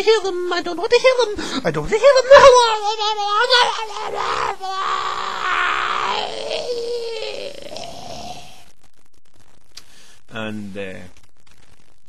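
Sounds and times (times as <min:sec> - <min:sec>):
faint hiss: 0:07.2 - 0:11.9.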